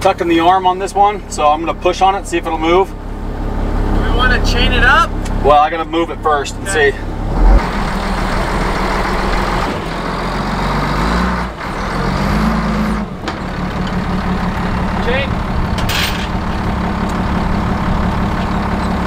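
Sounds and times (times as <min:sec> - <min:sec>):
diesel engine running under load: 0:00.0 - 0:19.0.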